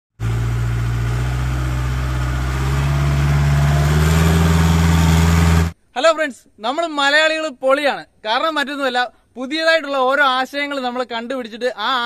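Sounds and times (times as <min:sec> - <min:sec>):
car engine running: 0:00.2 - 0:05.8.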